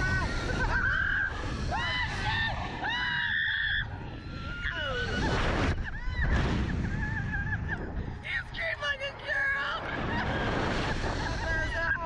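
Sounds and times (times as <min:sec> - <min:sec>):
riders screaming and laughing: 0:00.0 - 0:08.2, 0:09.4 - 0:12.0
wind rumble on microphone: 0:00.0 - 0:12.0.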